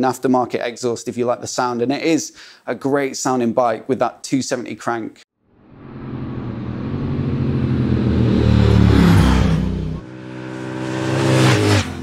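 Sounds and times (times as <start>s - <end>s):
motorcycles riding past: 5.6s - 12.0s.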